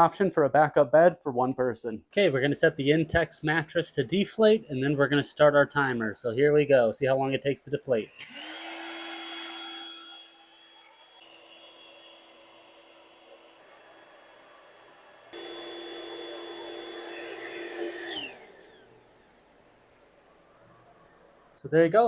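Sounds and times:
electric air pump running: 8.1s - 20.5s
pump motor spinning down: 8.1s - 21.5s.

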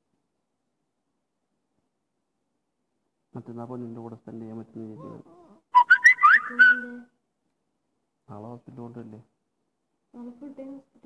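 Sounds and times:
whistle-like tones: 5.7s - 7.1s.

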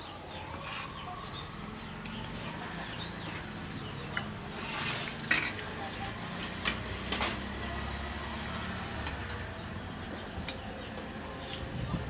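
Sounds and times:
spoons clinking on plates: 5.2s - 5.6s.

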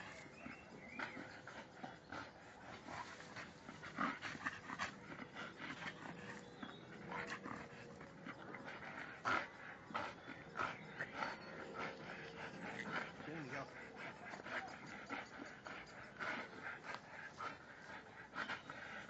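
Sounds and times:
dog breathy noises: 0.0s - 19.0s.

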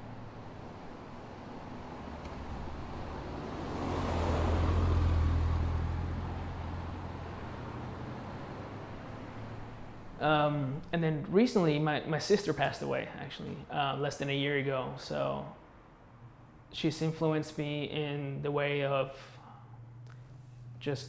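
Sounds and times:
car passing by: 0.0s - 10.2s
low traffic background: 0.0s - 21.0s.

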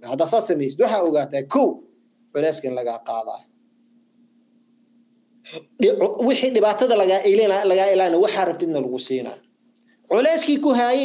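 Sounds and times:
man speaking: 0.0s - 3.5s, 5.5s - 9.5s, 10.1s - 11.0s
faint steady hum: 0.0s - 11.0s.

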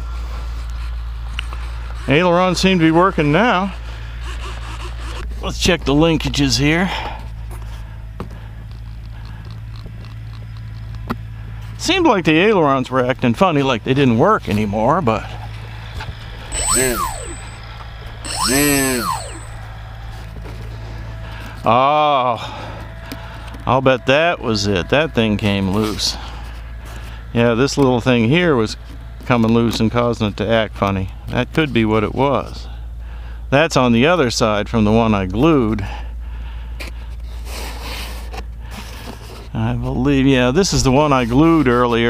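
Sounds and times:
steady low hum: 0.0s - 29.5s
low steady rumble: 0.0s - 42.0s
servo whining: 16.0s - 20.3s
breathing close to microphone: 32.6s - 33.5s, 35.8s - 39.5s.

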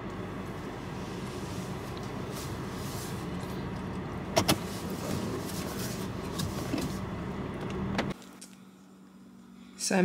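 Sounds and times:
car engine hum: 0.0s - 10.0s.

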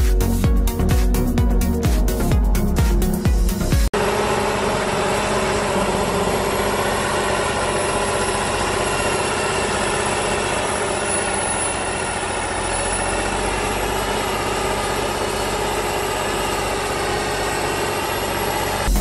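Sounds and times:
tractor diesel engine under load: 3.8s - 19.0s.

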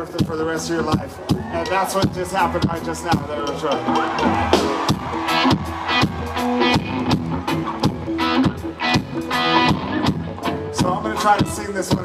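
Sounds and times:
bass guitar: 0.0s - 12.0s
drum kit beat: 0.0s - 12.0s
electric guitar: 3.7s - 12.0s.

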